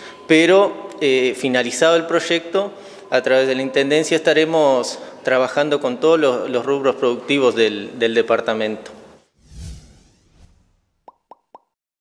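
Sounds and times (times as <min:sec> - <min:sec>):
swish: 0:09.3 - 0:11.0.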